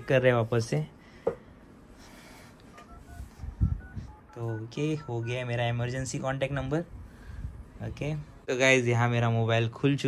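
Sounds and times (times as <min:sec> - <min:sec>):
phone keypad beeps: 0:02.7 - 0:05.6.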